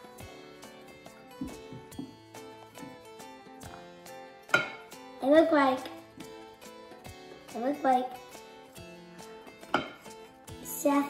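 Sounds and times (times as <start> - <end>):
faint background music: 0.0 - 11.0
wooden spoon knocking ceramic dish: 9.7 - 10.0.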